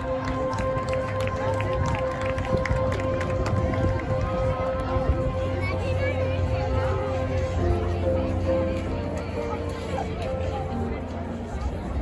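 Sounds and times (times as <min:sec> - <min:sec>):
spectators' voices: 0:00.0 - 0:12.0.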